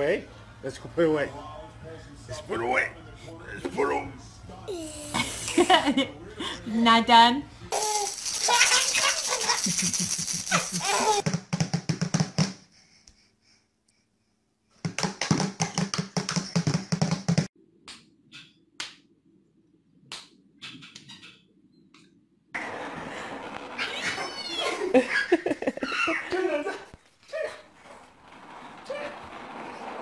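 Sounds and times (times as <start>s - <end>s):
baby laughing: 7.8s - 11.2s, 23.9s - 26.9s.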